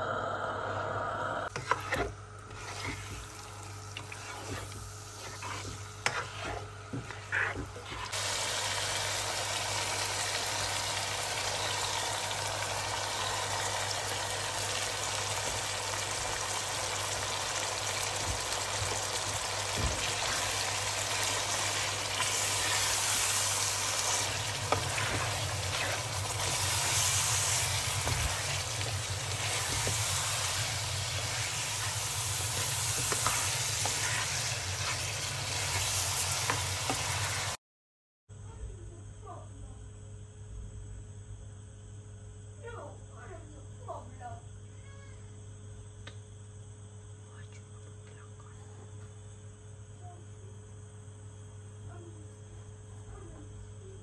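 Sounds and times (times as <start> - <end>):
food sizzling in a pan: 1.4 - 37.6.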